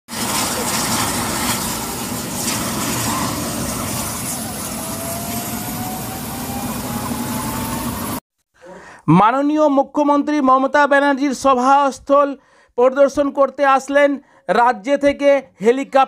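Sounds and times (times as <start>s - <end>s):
helicopter turbine and rotor: 0.2s - 8.2s
rising engine whine: 0.3s - 8.2s.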